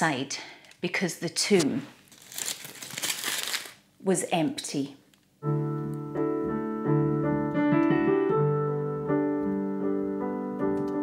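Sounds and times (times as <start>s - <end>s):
foil wrapper crinkling: 1.6s - 3.9s.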